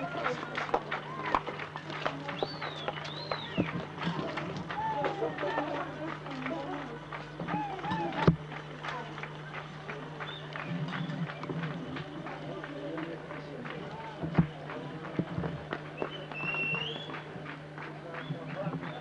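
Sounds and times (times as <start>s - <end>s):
indistinct chatter: 0.0s - 19.0s.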